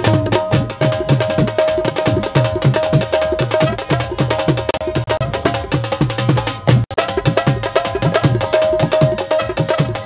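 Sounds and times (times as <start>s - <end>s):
folk music on hand drums: 0.0s - 10.0s.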